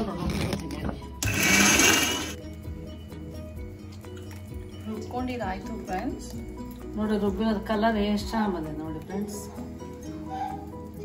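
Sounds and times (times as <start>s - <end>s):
background music: 0.0s - 11.0s
mixer grinder running: 1.2s - 2.4s.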